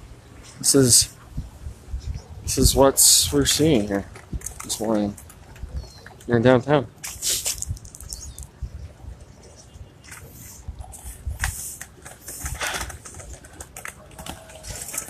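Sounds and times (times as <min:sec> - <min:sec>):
wind rumble on microphone: 0:00.0 - 0:06.2, 0:07.5 - 0:11.7
short hissy bursts: 0:07.0 - 0:07.7.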